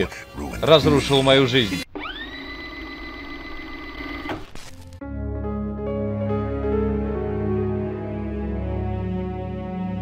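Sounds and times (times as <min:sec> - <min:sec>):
videotape rewinding whine: 0:01.3 - 0:04.8.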